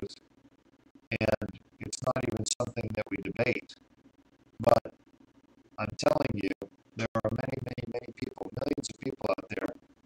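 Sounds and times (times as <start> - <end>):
man speaking: 1.1 - 3.8, 4.6 - 4.9, 5.8 - 9.8.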